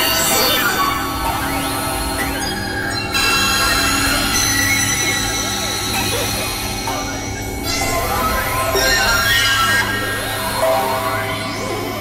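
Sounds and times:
experimental electronic drone music: 0.0s - 12.0s.

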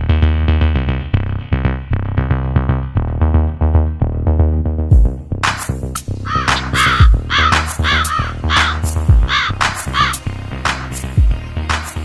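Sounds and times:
music with deep drum hits: 4.9s - 5.8s, 6.4s - 10.2s
crow cawing: 6.3s - 10.2s.

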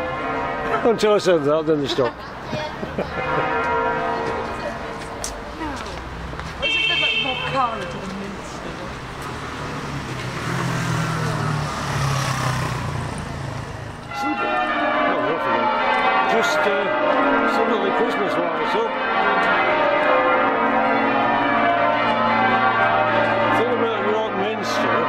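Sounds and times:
church bells ringing changes: 0.0s - 8.4s, 9.5s - 25.0s
car passing: 0.0s - 25.0s
street traffic: 0.0s - 25.0s.

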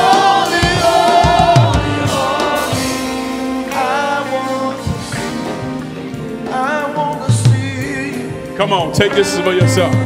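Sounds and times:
gospel singers holding notes: 0.0s - 10.0s.

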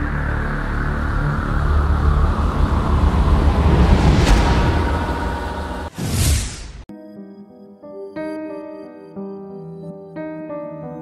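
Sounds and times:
low droning intro music: 0.0s - 6.0s.

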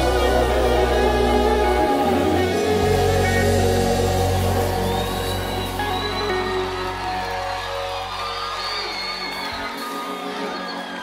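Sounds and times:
sustained keyboard chords: 0.0s - 8.6s
deep bass: 0.0s - 9.2s
gospel band instrumental: 0.0s - 11.0s.

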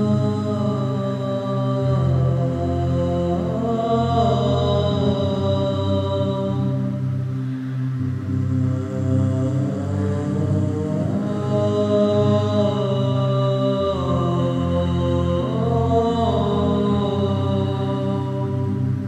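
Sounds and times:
choir singing wordless chords: 0.0s - 19.0s.

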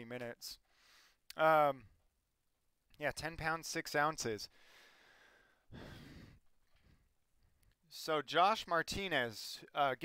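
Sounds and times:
faint breathing: 0.6s - 1.3s, 4.5s - 7.6s
man sighing exhale: 4.6s - 7.0s.

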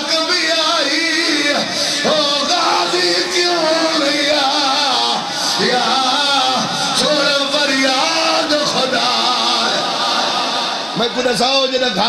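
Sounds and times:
man chanting over loudspeakers: 0.0s - 12.0s.

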